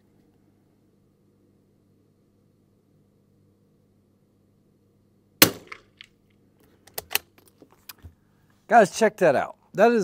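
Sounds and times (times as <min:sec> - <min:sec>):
rifle shot crack: 0:05.4 - 0:06.0
rifle bolt clicks: 0:06.9 - 0:08.0.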